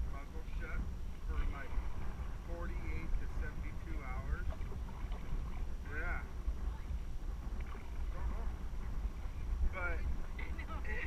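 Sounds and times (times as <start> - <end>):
people talking indistinctly: 0.0 - 7.0, 8.0 - 11.0
steady low rumble: 0.0 - 11.0.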